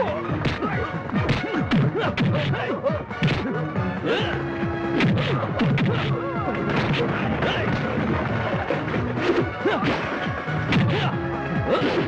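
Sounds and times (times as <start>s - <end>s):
action background score: 0.0s - 12.0s
punch sound effects: 3.2s - 3.6s, 5.0s - 7.9s, 9.2s - 11.1s.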